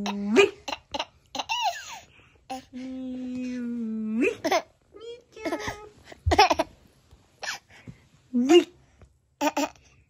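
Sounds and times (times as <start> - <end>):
baby laughing: 0.0 - 2.1, 5.4 - 6.8.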